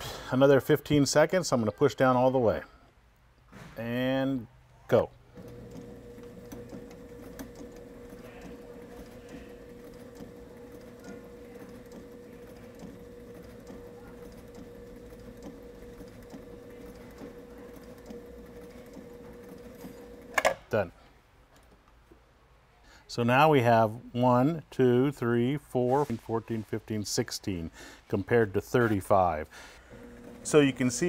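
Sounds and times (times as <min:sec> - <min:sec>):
sewing machine motor hum: 0:05.3 - 0:20.6, 0:29.8 - 0:31.0
needle stitching through fabric: 0:05.4 - 0:20.4.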